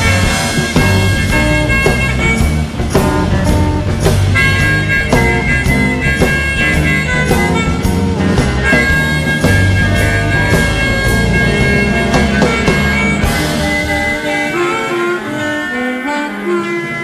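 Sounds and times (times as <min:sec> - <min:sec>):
blues-rock band playing: 0:00.0 - 0:17.0
harmonica long held notes: 0:00.0 - 0:17.0.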